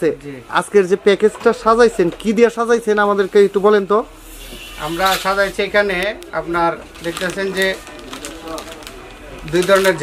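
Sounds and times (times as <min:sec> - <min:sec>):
man speaking: 0:04.8 - 0:07.8.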